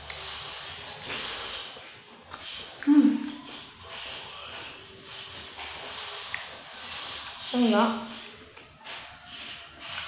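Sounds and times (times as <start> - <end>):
chewing mouth sounds: 0.0 - 7.5, 8.1 - 10.0.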